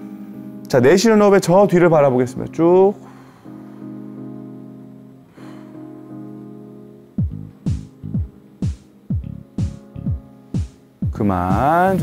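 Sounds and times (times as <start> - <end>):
sustained keyboard chords: 0.0 - 12.0.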